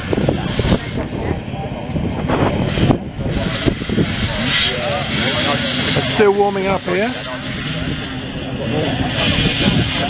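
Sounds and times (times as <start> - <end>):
many motorcycle engines running: 0.0 - 10.0.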